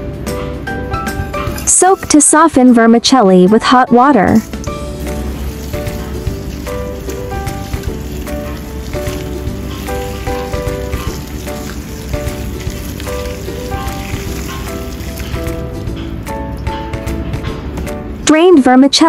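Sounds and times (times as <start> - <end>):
light background music: 0.0 - 19.0
hot water pouring and splashing: 4.4 - 16.3.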